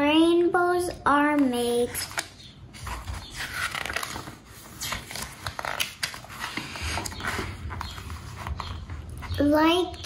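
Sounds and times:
book page turning: 0:01.8 - 0:09.3
paper rustling: 0:01.8 - 0:09.4.

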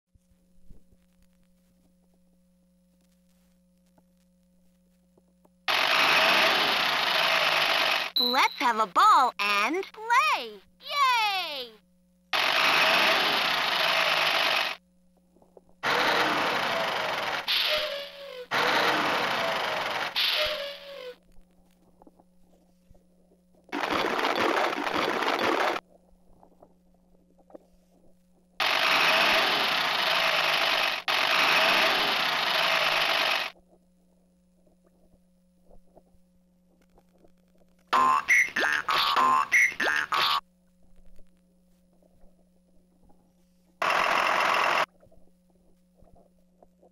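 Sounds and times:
toy truck rushing noise bursts: 0:05.7 - 0:08.2, 0:12.4 - 0:14.8, 0:15.8 - 0:21.2, 0:28.6 - 0:33.6, 0:43.8 - 0:44.9.

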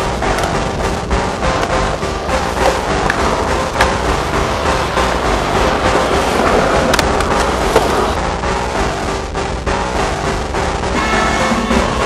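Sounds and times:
skateboard clacks: 0:00.0 - 0:08.2
skateboard wheels rolling on concrete: 0:00.0 - 0:10.7
music: 0:00.0 - 0:12.0.

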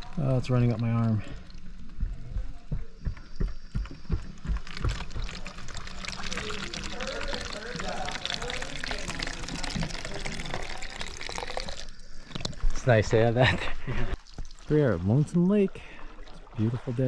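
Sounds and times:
water pouring into plastic bottle: 0:00.0 - 0:02.0, 0:03.8 - 0:16.9.

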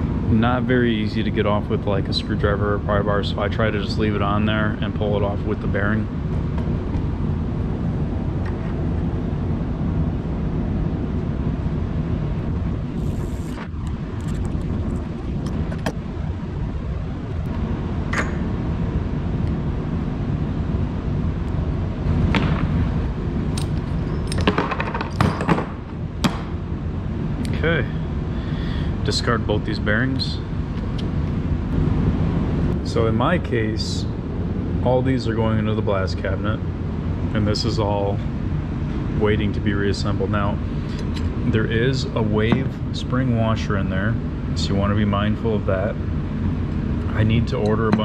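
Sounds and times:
steady low rumble: 0:00.0 - 0:48.0
metal tools clicking and clinking: 0:23.5 - 0:25.5.

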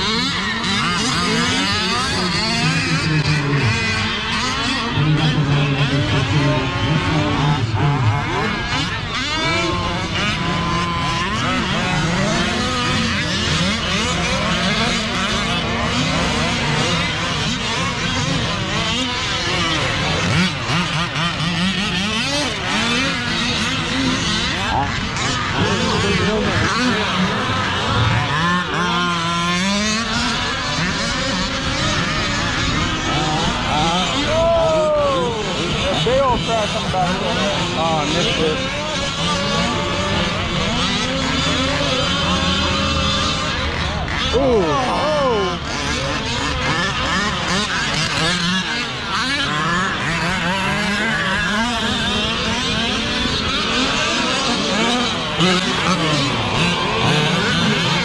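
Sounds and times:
rc car engines revving: 0:00.0 - 0:58.0.

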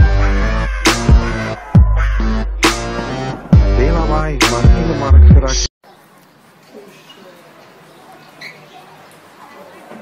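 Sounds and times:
distant voices: 0:05.8 - 0:10.0.

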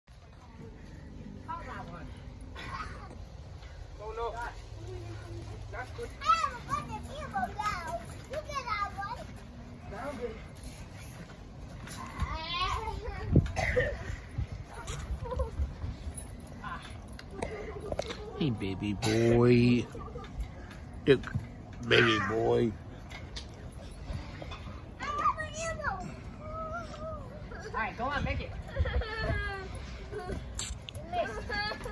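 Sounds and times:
children shouting and squealing: 0:04.8 - 0:09.5, 0:11.0 - 0:16.4, 0:21.8 - 0:22.8, 0:24.0 - 0:27.9, 0:28.5 - 0:31.9.

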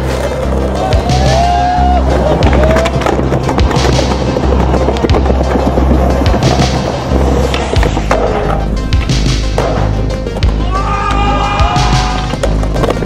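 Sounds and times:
music with deep bass: 0:00.0 - 0:13.0
skateboard wheels rolling on concrete: 0:00.0 - 0:13.0
skateboard clacks popping and landing: 0:02.2 - 0:10.6, 0:12.2 - 0:13.0.

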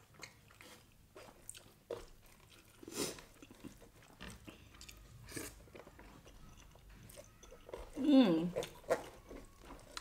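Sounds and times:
person chewing food: 0:00.0 - 0:10.0.

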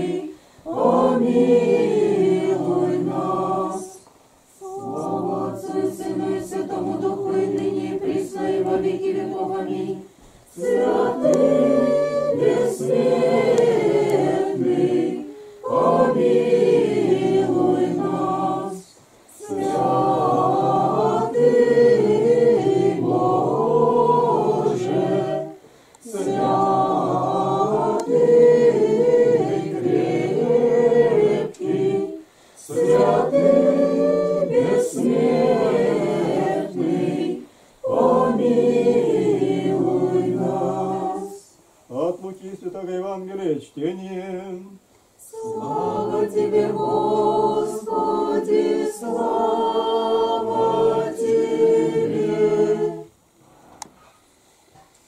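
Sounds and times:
congregation chanting unaccompanied: 0:00.0 - 0:53.2.

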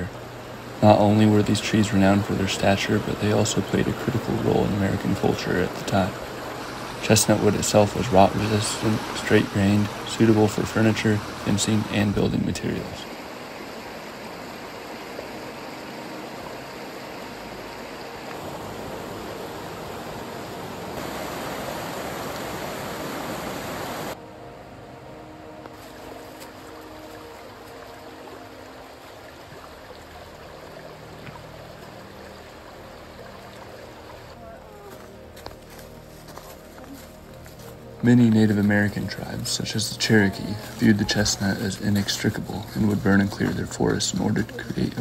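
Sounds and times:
creek rushing over rocks: 0:00.0 - 0:24.2, 0:25.6 - 0:45.0
outdoor ambience: 0:00.0 - 0:45.0.

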